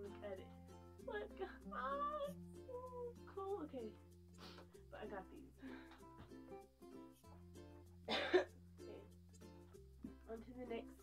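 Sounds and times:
plucked string music: 0:00.0 - 0:11.0
person coughing: 0:08.1 - 0:08.5.

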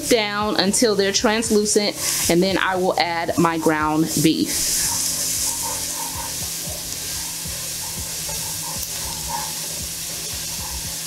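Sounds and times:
vegetables sizzling in oil: 0:00.0 - 0:11.0
wooden spoon stirring and scraping: 0:03.4 - 0:11.0.

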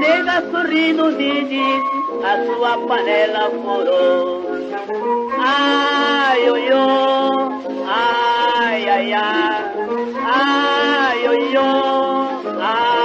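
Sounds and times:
steady lower accompaniment: 0:00.0 - 0:13.0.

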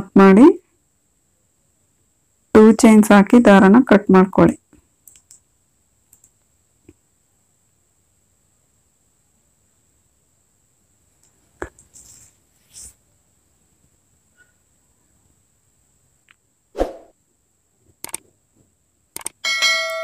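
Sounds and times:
quick clicks: 0:18.0 - 0:18.2, 0:19.2 - 0:19.4
ringing bell-like chime: 0:19.4 - 0:20.0.

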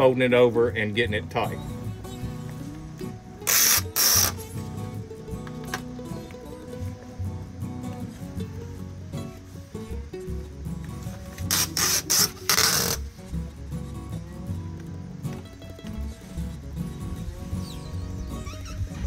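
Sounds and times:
background music with bass line: 0:00.0 - 0:19.0
tape peeling off: 0:03.4 - 0:04.6, 0:11.0 - 0:13.4.

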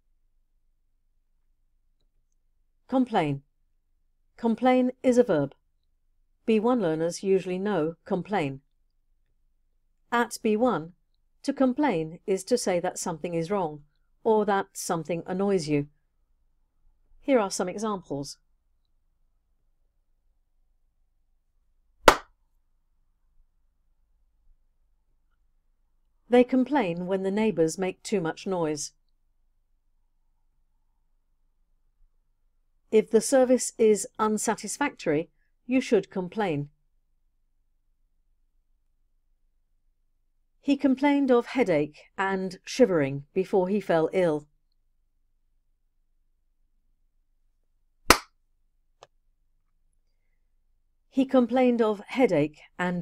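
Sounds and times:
sharp clap-like smack: 0:22.0 - 0:22.3, 0:48.1 - 0:48.4.

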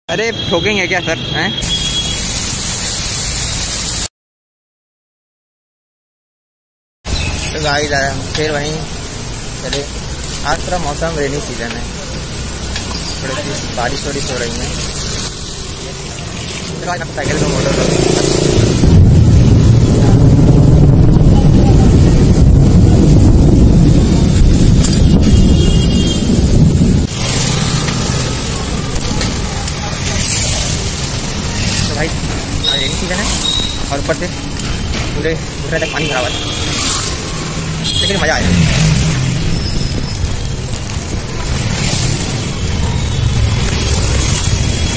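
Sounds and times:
rain hissing on flooded street: 0:00.1 - 0:04.1, 0:07.1 - 0:44.9
tyres on wet road: 0:00.1 - 0:04.1, 0:07.1 - 0:44.9
wind buffeting microphone: 0:18.7 - 0:27.1.

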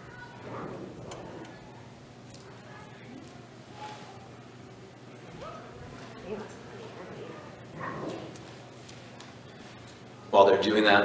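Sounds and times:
children chattering: 0:00.0 - 0:10.3.

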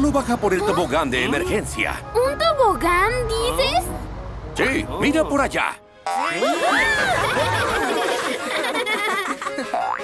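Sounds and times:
background music: 0:00.1 - 0:10.0
cartoon boing sound effects: 0:06.0 - 0:06.6.

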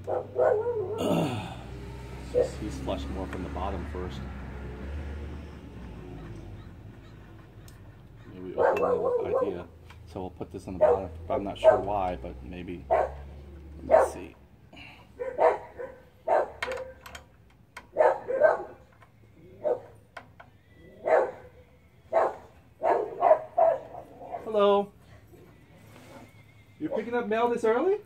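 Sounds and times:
dog barking: 0:00.0 - 0:01.0, 0:08.4 - 0:09.7, 0:10.8 - 0:12.0, 0:12.8 - 0:14.3, 0:15.2 - 0:17.0, 0:17.9 - 0:18.8, 0:19.6 - 0:20.0, 0:21.0 - 0:21.5, 0:22.1 - 0:24.5.

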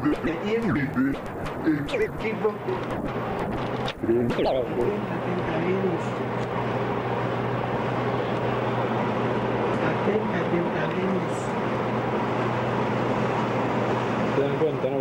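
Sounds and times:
radio receiver hiss: 0:00.0 - 0:05.1
faint broken radio voices: 0:00.0 - 0:06.2
constant low hum: 0:00.0 - 0:14.4.

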